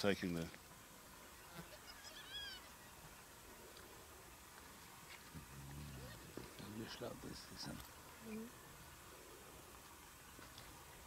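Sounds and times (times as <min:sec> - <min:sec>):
hyena cub squealing: 0:01.5 - 0:02.8.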